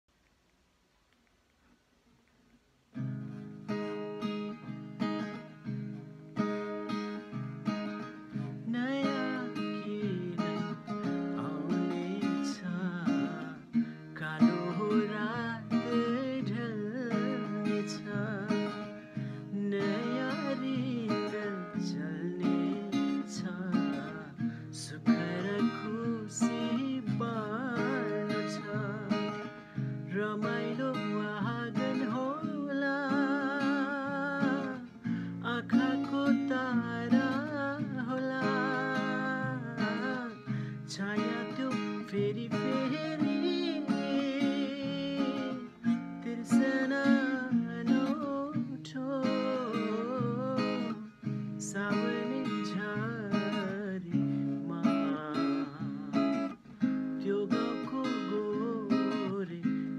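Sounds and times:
acoustic guitar strummed: 2.9 - 59.9
man singing: 8.3 - 59.9.

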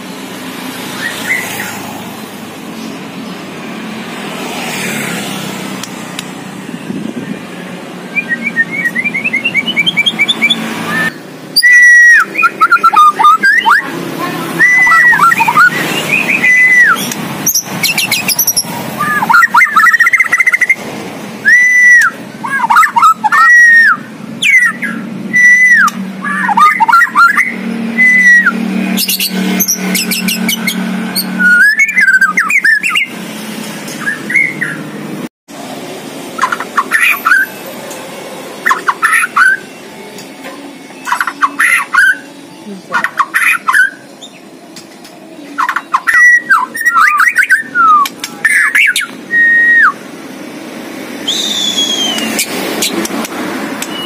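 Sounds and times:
songbird whistling: 0.9 - 1.8, 8.1 - 13.9, 14.6 - 20.8, 21.4 - 33.1, 34.0 - 34.9, 36.4 - 37.5, 38.6 - 39.7, 41.0 - 42.3, 43.0 - 44.5, 45.6 - 50.0, 51.2 - 53.1, 53.8 - 54.0.

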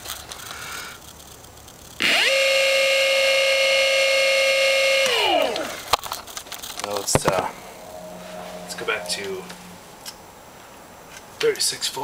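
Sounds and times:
electric motor whine: 2.0 - 5.8, 7.2 - 10.6.

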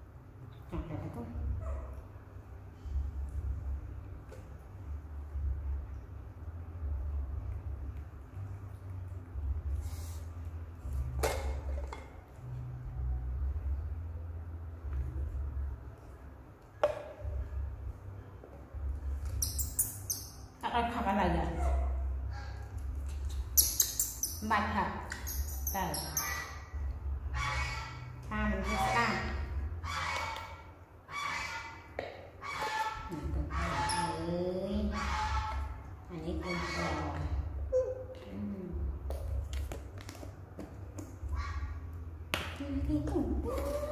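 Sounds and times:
monkey whimpering coo calls: 37.7 - 38.2, 43.4 - 43.9.

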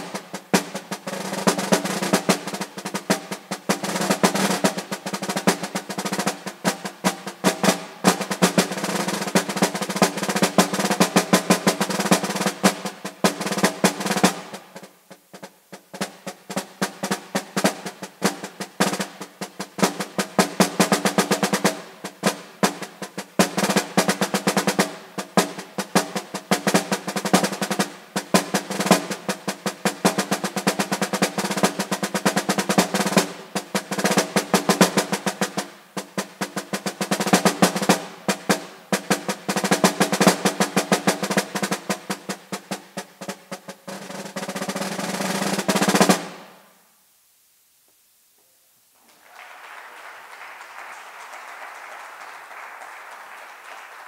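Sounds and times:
snare drum strokes and rolls: 0.0 - 46.6, 49.3 - 54.0.

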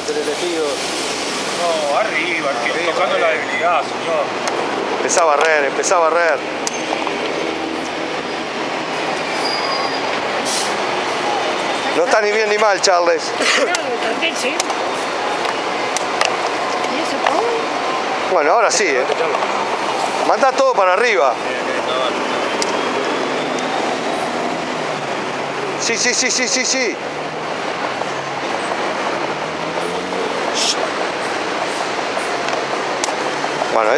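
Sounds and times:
large vehicle passing: 0.0 - 33.9
street traffic rushing: 0.0 - 33.9
faint high squealing tones: 9.2 - 10.2.

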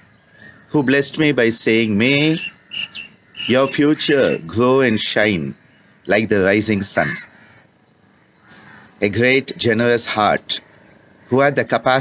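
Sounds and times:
harsh crow-like bird call: 0.0 - 9.4.

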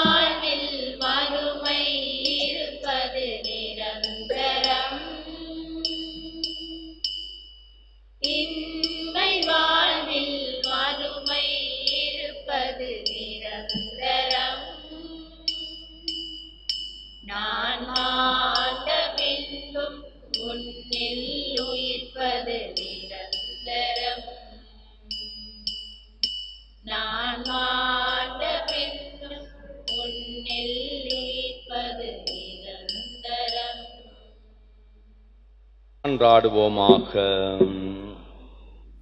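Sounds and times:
soft regular beat: 0.0 - 0.7, 1.7 - 5.1, 13.6 - 14.4, 36.8 - 38.2
hymn singing: 0.0 - 6.9, 8.2 - 16.3, 17.3 - 24.7, 26.9 - 34.1, 36.0 - 38.5
instrumental accompaniment: 0.0 - 12.2, 36.8 - 38.2
bright chime struck: 4.0 - 8.0.

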